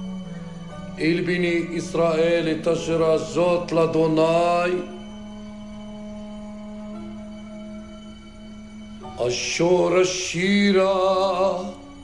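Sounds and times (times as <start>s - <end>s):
steady held drone: 0.0s - 12.0s
man chanting: 0.9s - 5.1s, 9.0s - 11.9s.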